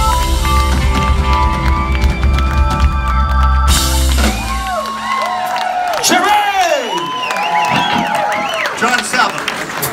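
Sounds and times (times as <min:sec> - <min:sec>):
live rock band playing: 0:00.0 - 0:05.9
audience whooping and cheering: 0:01.2 - 0:09.9.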